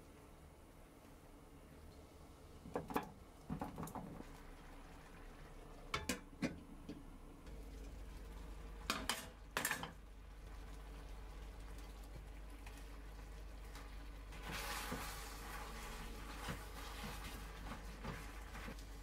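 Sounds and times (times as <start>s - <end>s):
sauce simmering in a frying pan: 0.1s - 19.0s
ingredients dropped into pan: 8.9s - 10.0s.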